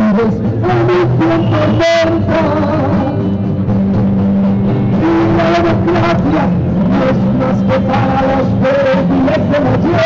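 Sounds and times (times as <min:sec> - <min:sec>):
man singing long held notes: 0:00.0 - 0:03.4, 0:04.6 - 0:10.0
backing music over loudspeaker: 0:00.0 - 0:10.0.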